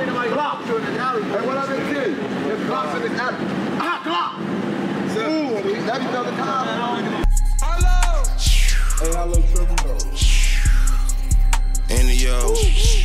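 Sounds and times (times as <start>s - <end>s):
men talking and calling out: 0.0s - 13.0s.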